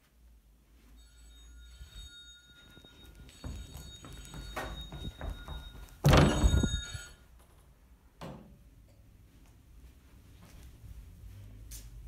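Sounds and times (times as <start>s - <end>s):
faint high-pitched tones: 0.6s - 7.5s
loud thud: 6.0s - 6.7s.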